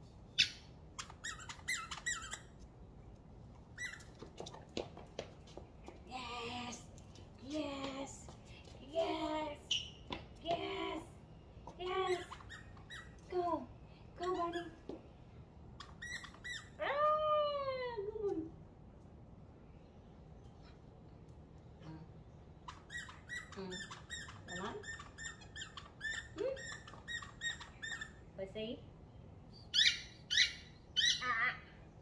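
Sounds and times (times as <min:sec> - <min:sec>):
dog squeaking and squealing: 0:00.4 - 0:02.6, 0:03.7 - 0:04.3, 0:12.1 - 0:13.3, 0:15.8 - 0:16.8, 0:22.6 - 0:28.3, 0:29.5 - 0:31.4.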